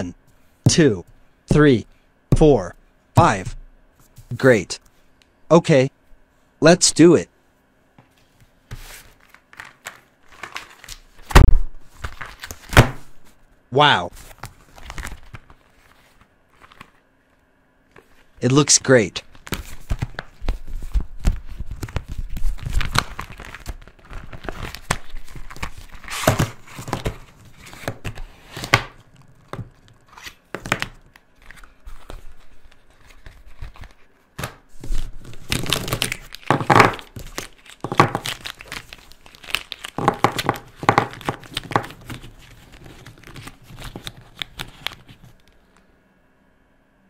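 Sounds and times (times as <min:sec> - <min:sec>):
plastic packaging crinkling: 0:09.2 - 0:12.7, 0:21.4 - 0:27.7, 0:35.3 - 0:45.6.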